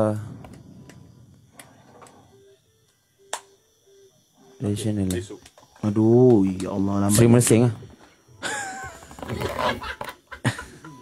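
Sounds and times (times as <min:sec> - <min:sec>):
sharp click: 0:03.3 - 0:03.6.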